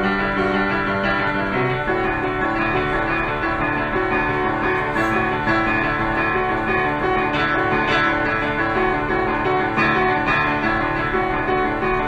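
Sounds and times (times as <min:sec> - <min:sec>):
solo grand piano: 0:00.0 - 0:12.0.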